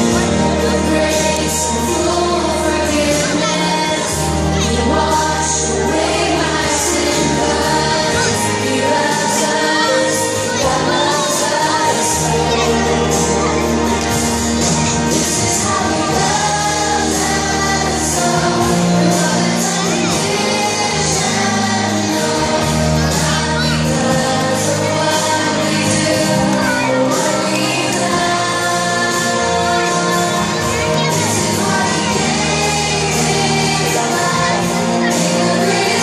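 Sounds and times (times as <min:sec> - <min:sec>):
accompanying music: 0:00.0 - 0:36.0
children's choir singing: 0:00.0 - 0:36.0.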